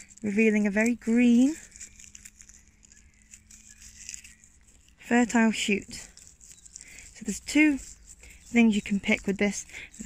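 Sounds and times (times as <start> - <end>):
rustling of hands handling plant: 0.0 - 10.0.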